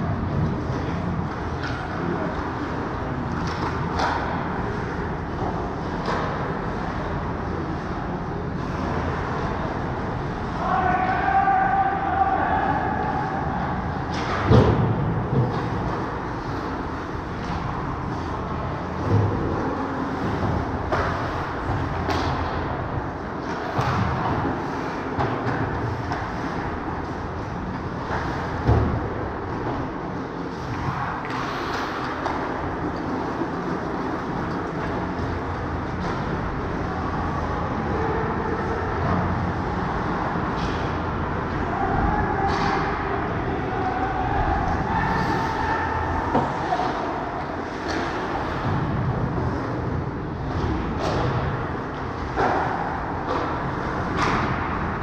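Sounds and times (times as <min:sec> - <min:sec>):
ice rink din: 0:19.0 - 0:55.0.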